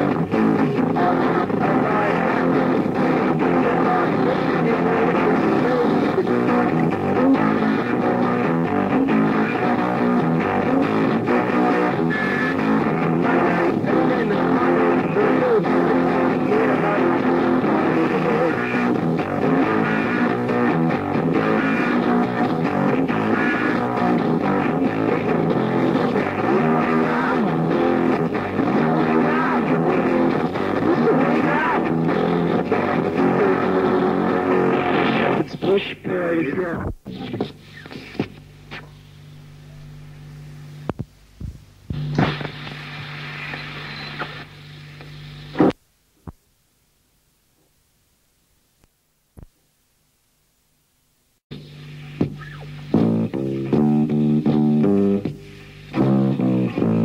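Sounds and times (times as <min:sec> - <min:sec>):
lo-fi punk rock band playing: 0:00.0 - 0:45.8, 0:51.5 - 0:57.0.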